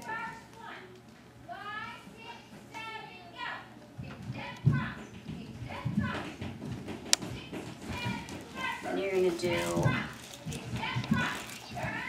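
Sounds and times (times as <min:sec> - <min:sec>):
children chattering: 0:07.8 - 0:12.0.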